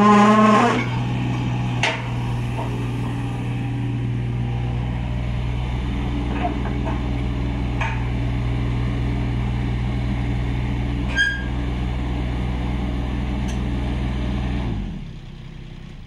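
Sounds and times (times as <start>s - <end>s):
diesel engine running: 0.0s - 16.0s.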